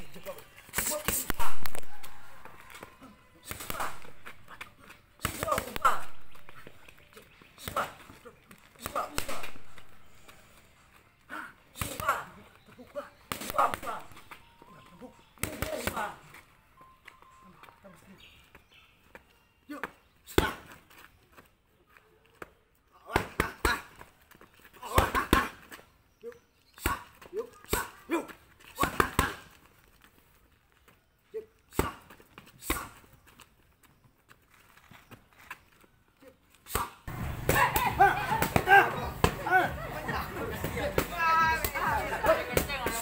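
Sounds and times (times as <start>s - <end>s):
boxing gloves slapping mitts: 0.2s - 2.0s, 2.6s - 10.0s, 11.8s - 12.4s, 13.3s - 14.4s, 15.4s - 16.2s, 19.8s - 21.0s, 22.4s - 25.8s, 26.8s - 30.1s, 31.7s - 33.1s, 36.6s - 39.6s, 40.5s - 43.0s
voices: 36.2s - 43.0s.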